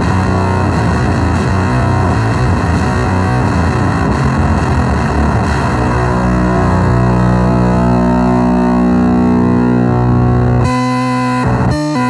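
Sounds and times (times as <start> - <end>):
fuzz-distorted electric guitar: 0.0 - 12.0.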